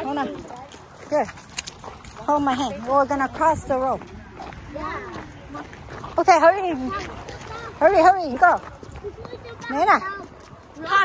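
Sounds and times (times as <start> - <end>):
faint background noise: 0.0 - 11.0
nearby talk: 0.0 - 11.0.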